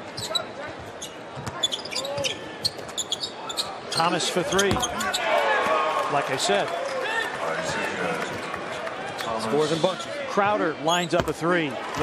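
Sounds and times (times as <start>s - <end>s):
murmur of arena crowd: 0.0s - 12.0s
sneaker squeaks: 0.2s - 5.2s.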